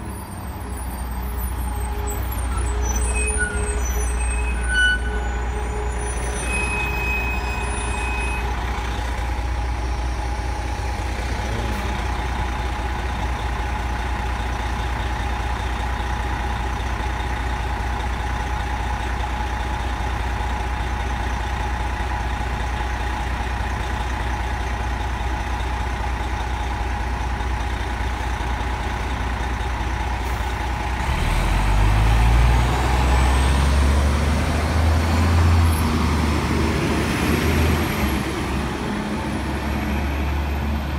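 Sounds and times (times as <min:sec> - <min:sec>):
bus accelerating with rising whine: 0:00.0 - 0:40.9
bus diesel engine idling: 0:00.0 - 0:40.9.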